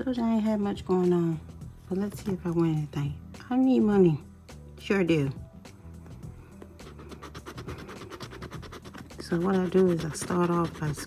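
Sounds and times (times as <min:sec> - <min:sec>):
scraper scratching lottery ticket: 0:06.8 - 0:11.0.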